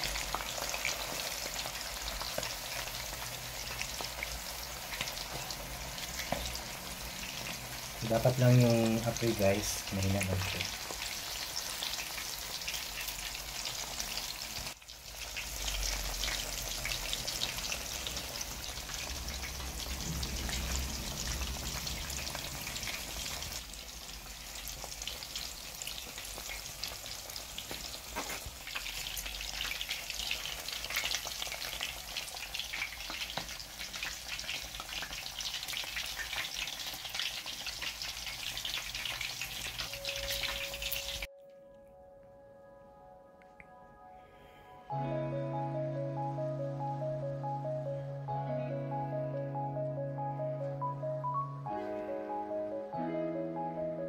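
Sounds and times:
food deep-frying in oil: 0.0 - 41.3.

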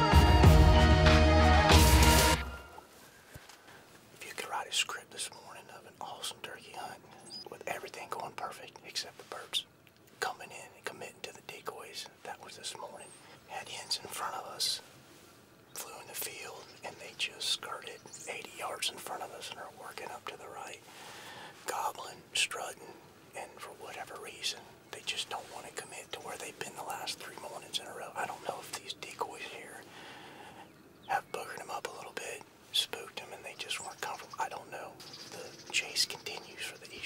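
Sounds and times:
man whispering: 4.1 - 15.0, 15.7 - 37.0.

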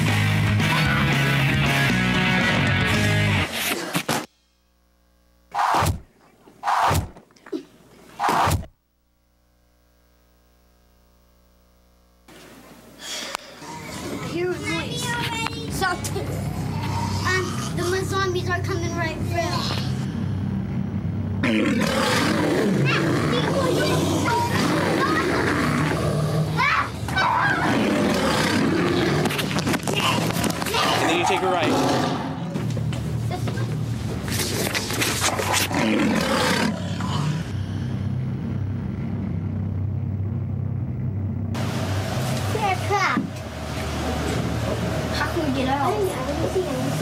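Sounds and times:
low steady hum: 8.8 - 21.7, 36.8 - 47.0
children growling and shrieking: 13.5 - 18.1, 21.4 - 32.4
loud noisy full-range sound: 14.6 - 47.0
low rumbling drone: 15.6 - 30.4, 35.2 - 47.0.

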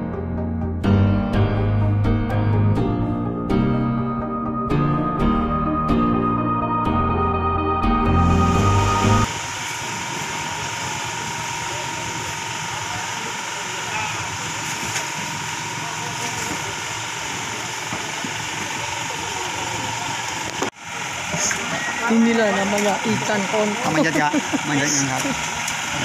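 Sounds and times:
boat engine idling: 8.3 - 26.0.

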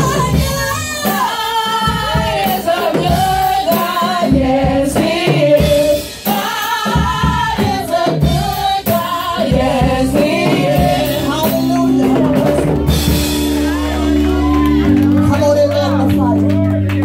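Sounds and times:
women singing gospel song: 0.0 - 15.0.

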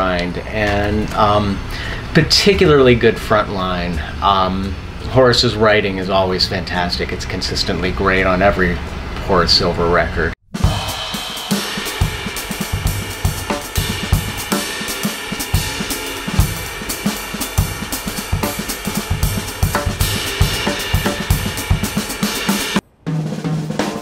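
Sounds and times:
jazz drum kit playing: 10.5 - 24.0
music: 10.5 - 24.0.

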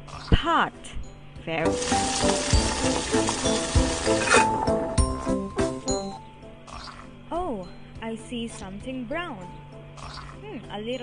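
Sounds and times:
light background music with beat: 0.8 - 11.0
cartoon pot boiling hiss: 1.7 - 5.4.

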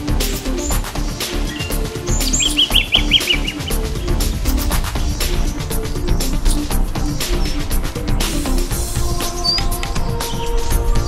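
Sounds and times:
background music: 0.0 - 11.0
robin calling short repeated notes: 0.6 - 5.6.

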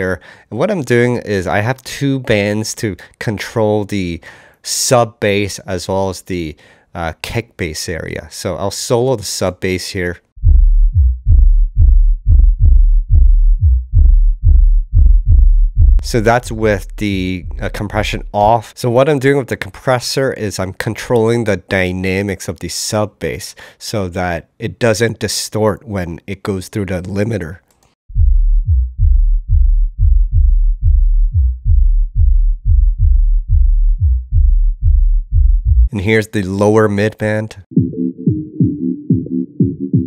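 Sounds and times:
deep kick and sub-bass pulsing: 10.4 - 18.5, 28.1 - 35.9, 37.8 - 40.0.

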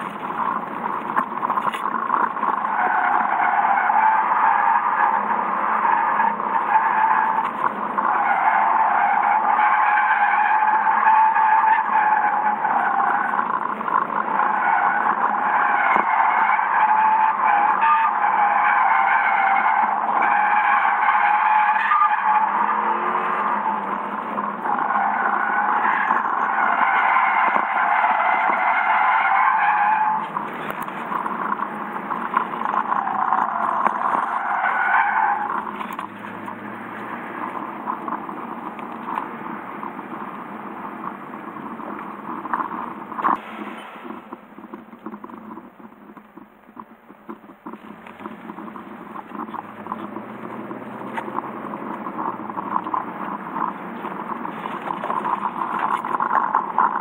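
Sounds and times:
car engine: 0.0 - 57.0
tyres squealing: 0.0 - 57.0.

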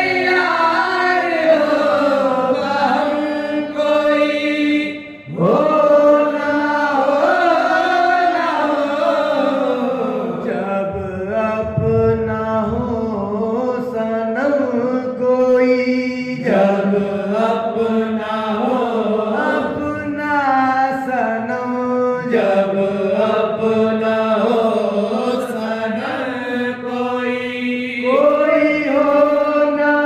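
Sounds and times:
men singing devotional song: 0.0 - 30.0.

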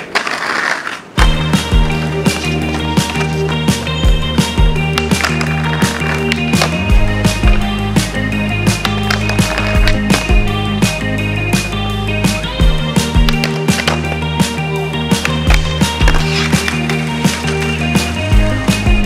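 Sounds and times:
skateboard trick on stone ledge: 0.0 - 11.0, 12.9 - 19.0
skateboard wheels rolling on concrete: 0.0 - 19.0
music with steady beat: 1.2 - 19.0.

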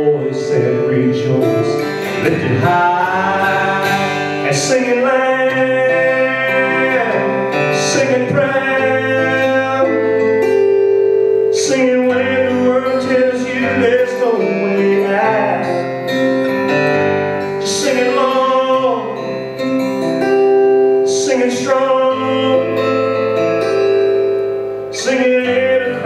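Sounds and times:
strummed acoustic guitar: 0.0 - 26.0.

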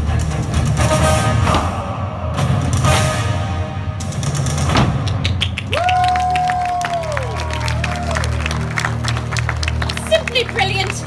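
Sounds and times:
recorded show music: 0.0 - 11.0
audience clapping: 5.0 - 11.0
person whooping: 5.7 - 8.4.

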